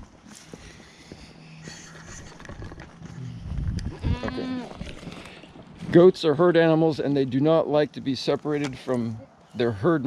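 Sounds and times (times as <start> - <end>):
low rumble on microphone: 1.7 - 5.1
goat bleating: 3.9 - 4.8.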